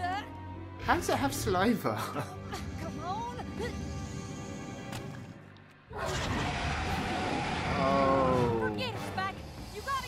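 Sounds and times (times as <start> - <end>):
cartoon wolf roar: 6.0 - 8.6.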